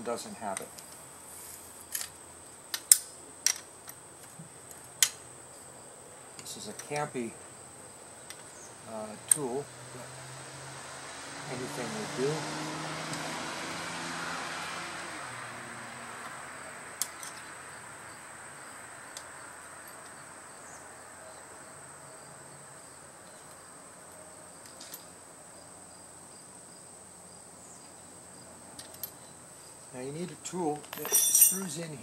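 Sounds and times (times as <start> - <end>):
insect chirring: 15.6 - 32.0.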